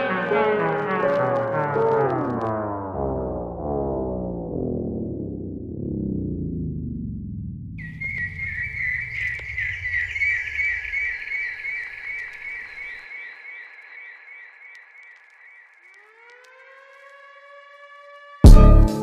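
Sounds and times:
rising siren-like tone: 0.0 - 18.5
warbling siren-like whistle tone: 7.8 - 18.5.

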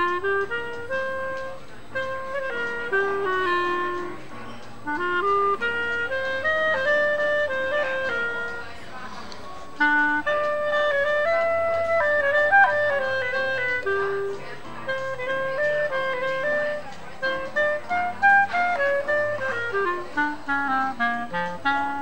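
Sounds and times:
solo clarinet melody: 0.0 - 22.0.

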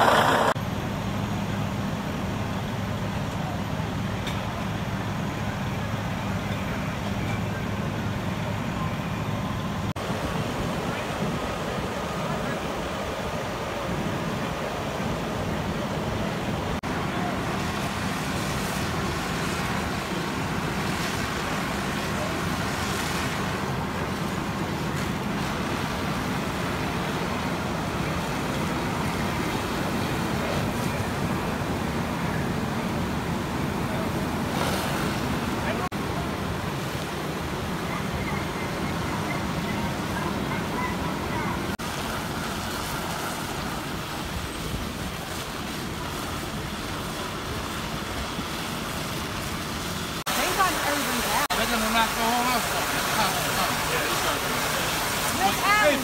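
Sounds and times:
hiss: 0.0 - 0.6
indistinct voices: 0.0 - 0.6
fire engines rumbling: 0.0 - 56.0.

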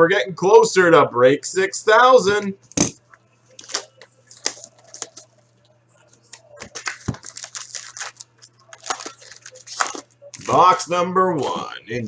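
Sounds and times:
foil card packs rustling: 3.6 - 5.3, 6.3 - 10.9.

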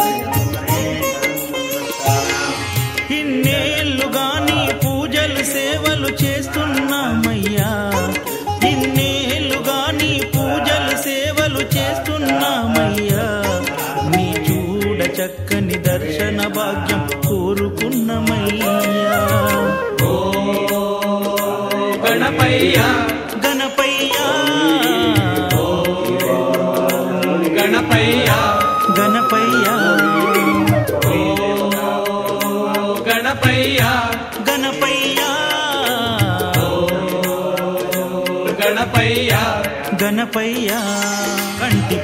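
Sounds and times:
devotional song: 0.0 - 42.0
steady percussion beat: 0.0 - 42.0
wavering melody line: 18.6 - 20.3, 28.3 - 31.5.

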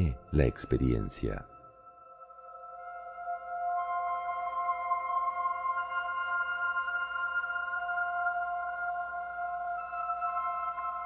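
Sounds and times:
ambient music with ringing tones: 0.0 - 11.0.

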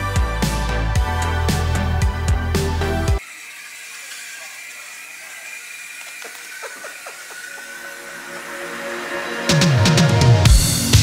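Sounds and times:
toy motor and plastic gears: 3.2 - 8.8.

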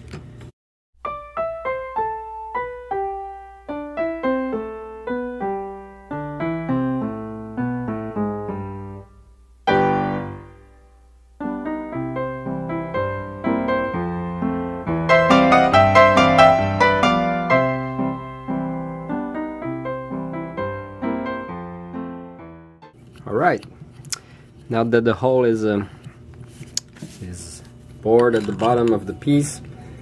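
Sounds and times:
solo piano music: 1.0 - 23.0.

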